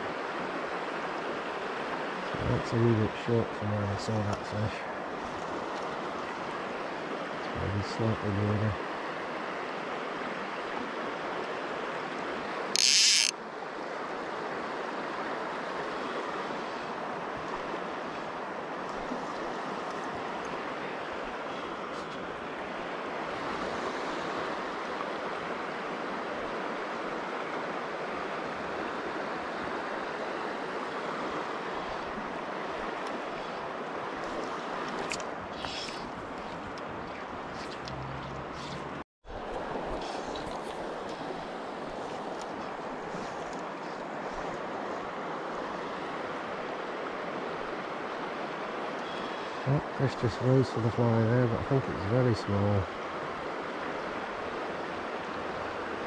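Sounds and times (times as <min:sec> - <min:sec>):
river water over stones: 0:00.0 - 0:56.0.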